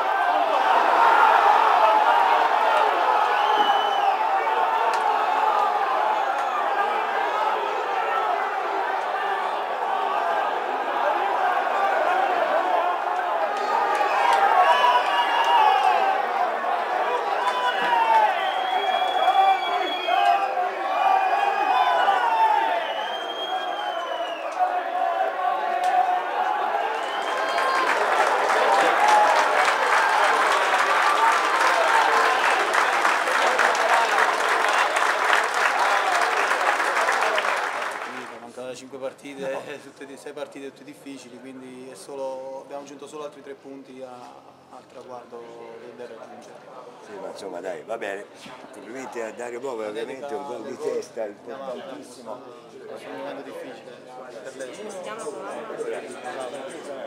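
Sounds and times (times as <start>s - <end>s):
crowd applause: 0.0s - 38.5s
stadium crowd cheering: 0.0s - 38.5s.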